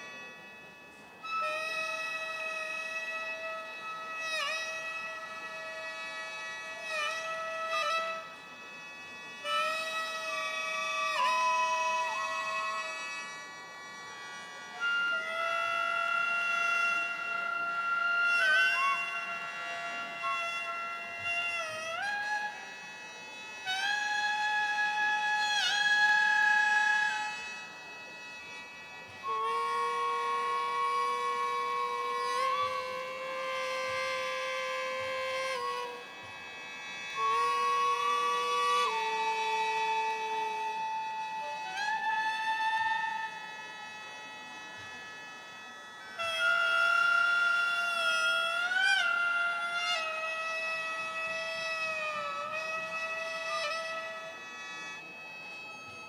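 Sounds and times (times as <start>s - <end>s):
reedy wind melody: 0.0s - 56.0s.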